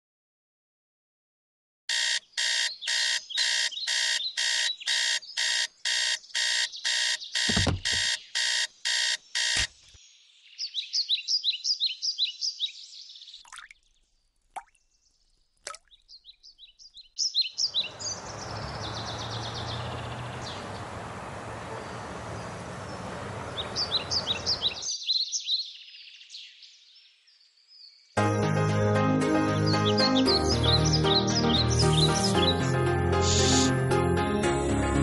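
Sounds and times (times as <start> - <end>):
alarm clock beeping: 1.9 - 9.7
high chirping: 2.2 - 5.6, 16.8 - 24.9
alarm clock click: 6.6 - 9.7
hand thumping on alarm clock: 7.4 - 8.2
street noise: 17.6 - 24.8.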